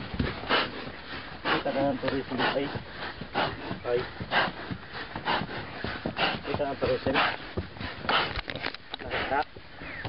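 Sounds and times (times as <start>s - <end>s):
horse breathing hard: 0.0s - 10.0s.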